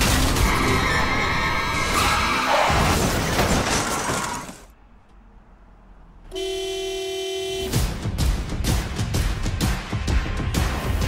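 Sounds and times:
crash: 0.0s - 4.7s
steady horn blast: 6.3s - 8.0s
loud music with regular beat: 7.8s - 11.0s.

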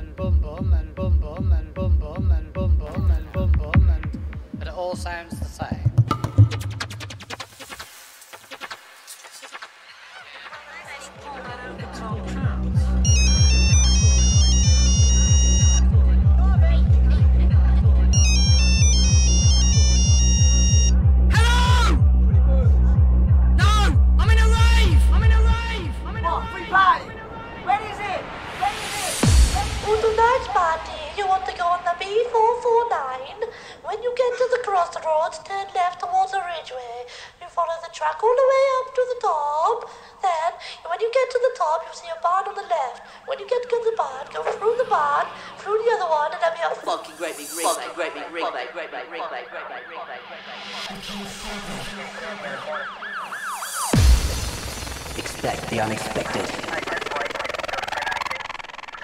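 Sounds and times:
loud even kick drum: 0.6s - 7.2s, 54.0s - 55.4s
high stepped synth melody: 12.3s - 16.2s, 16.9s - 21.4s, 47.5s - 59.0s
high warbling voice-like sound: 47.4s - 53.3s, 54.8s - 59.0s.

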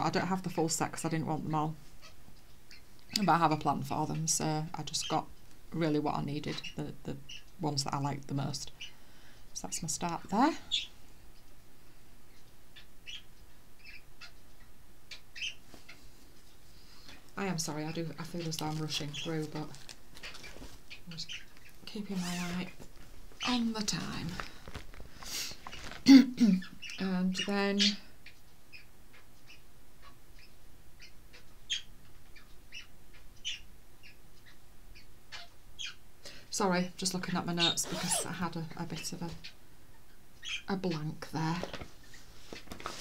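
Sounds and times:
small bird chirping: 12.3s - 15.6s, 17.7s - 22.8s, 37.5s - 38.4s
fabric rustling: 18.4s - 20.9s, 22.1s - 26.1s.

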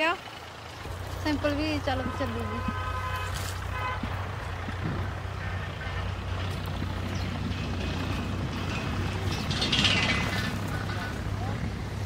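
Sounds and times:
low engine hum: 0.0s - 12.0s
outdoor noise: 0.0s - 12.0s.

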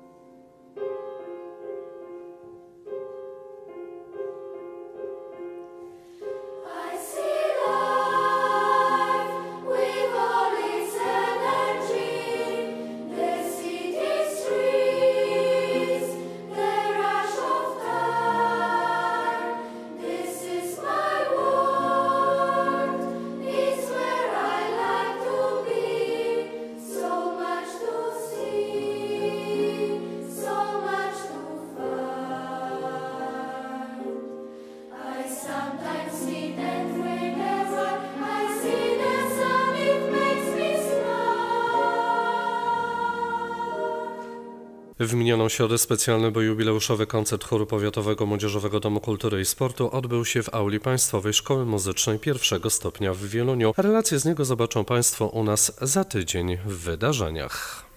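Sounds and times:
youth choir singing: 6.5s - 44.9s.

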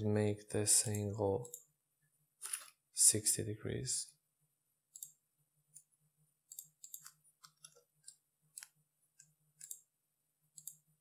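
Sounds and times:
mouse and keyboard clicks: 6.5s - 9.8s.

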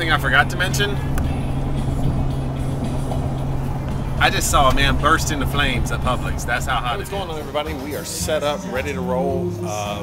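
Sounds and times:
car engine and road noise: 0.0s - 8.1s.

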